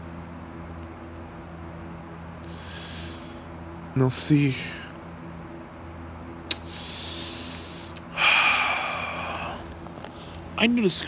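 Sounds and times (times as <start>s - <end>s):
man breathing: 2.4s - 3.6s, 6.5s - 10.6s.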